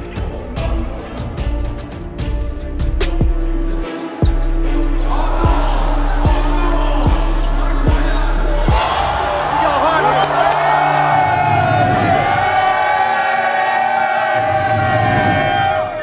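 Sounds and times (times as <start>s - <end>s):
music with heavy kick drum: 0.0s - 9.5s
crowd noise: 3.4s - 16.0s.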